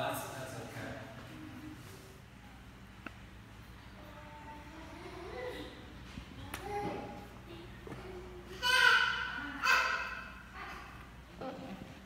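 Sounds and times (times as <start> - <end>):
child crying out: 8.6 - 10.9.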